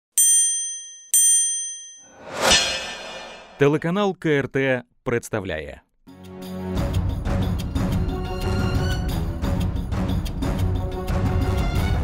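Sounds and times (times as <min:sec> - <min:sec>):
bright bell-like dings: 0:00.2 - 0:02.2.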